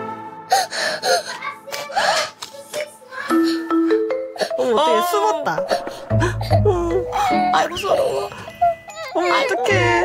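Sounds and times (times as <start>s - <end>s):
background music: 0.0s - 10.0s
child whimpering and gasping: 0.5s - 2.5s, 3.1s - 9.6s.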